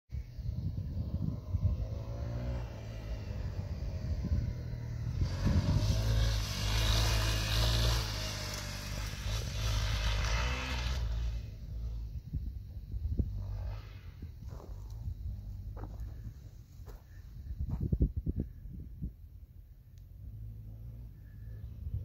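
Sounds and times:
dirt bike engine revving: 0:00.8 - 0:12.3.

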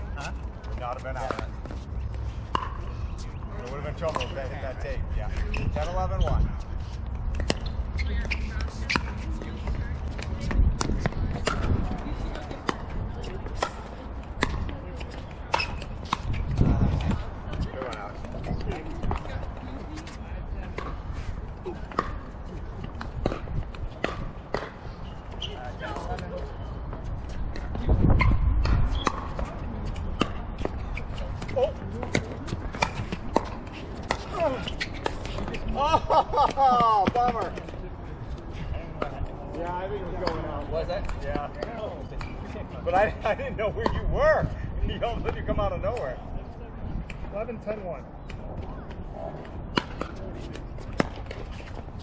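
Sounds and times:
players' voices: 0:00.0 - 0:52.0.

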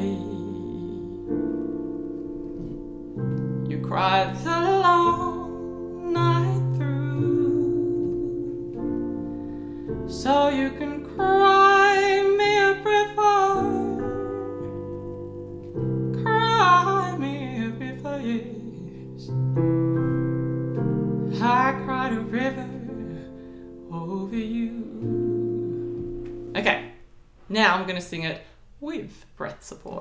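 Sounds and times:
woman singing jazz ballad: 0:00.0 - 0:01.5, 0:03.7 - 0:09.3, 0:09.9 - 0:19.4, 0:21.3 - 0:26.8
digital keyboard chords: 0:00.0 - 0:27.0.

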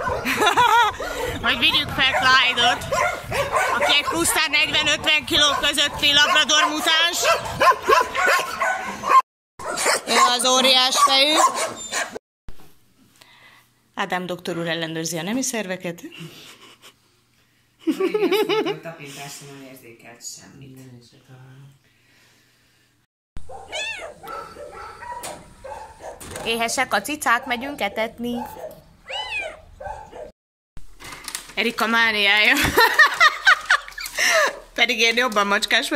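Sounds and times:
dogs barking: 0:00.0 - 0:12.2, 0:23.4 - 0:28.9, 0:29.6 - 0:30.3
cat meowing: 0:23.6 - 0:24.5, 0:29.0 - 0:29.7.

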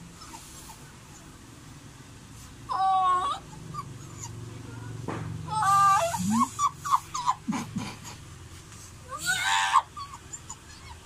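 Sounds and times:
dog whimpering: 0:00.2 - 0:01.3, 0:02.7 - 0:04.4, 0:05.5 - 0:07.7, 0:09.1 - 0:11.0
dog whining: 0:00.2 - 0:01.3, 0:02.7 - 0:04.4, 0:05.5 - 0:07.7, 0:09.1 - 0:11.0.

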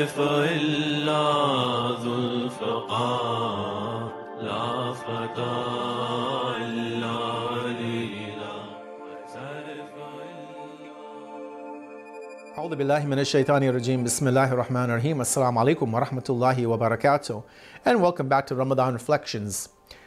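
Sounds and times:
chanted vocal: 0:00.0 - 0:17.4.

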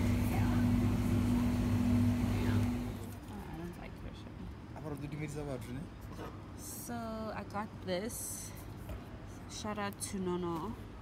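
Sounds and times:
drinks cooler humming: 0:00.0 - 0:03.0.

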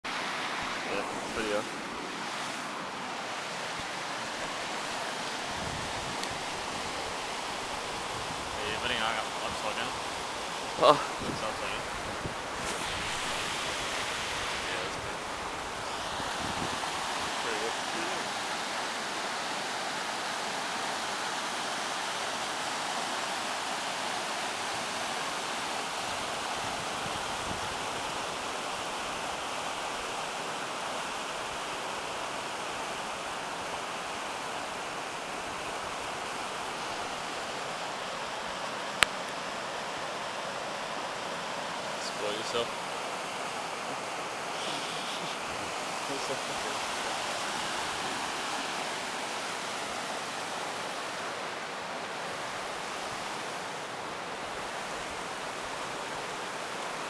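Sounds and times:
river rushing over stones: 0:00.1 - 0:57.0.

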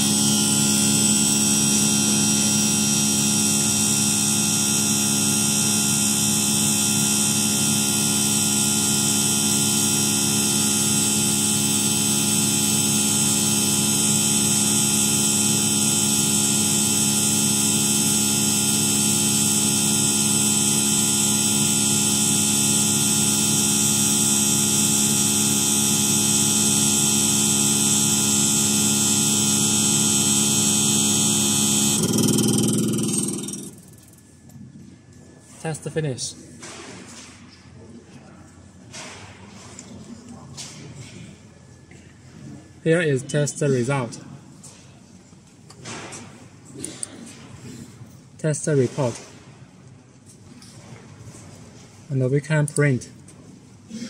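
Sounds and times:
test bench pump whining hum: 0:00.0 - 0:54.0.

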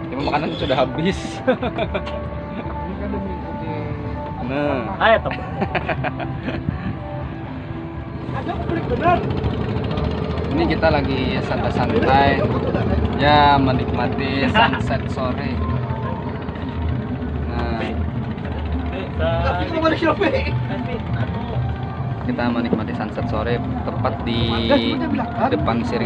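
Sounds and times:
boat engine rumbling: 0:00.0 - 0:26.0.

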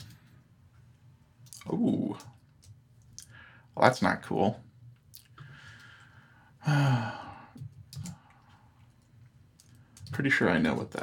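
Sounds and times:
man sighing: 0:06.6 - 0:07.6.

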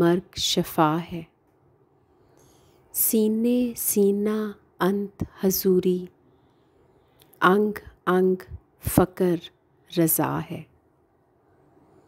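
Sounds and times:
faint breath: 0:02.0 - 0:02.9, 0:06.2 - 0:07.3
woman reciting verse: 0:03.0 - 0:06.2, 0:07.4 - 0:10.7.

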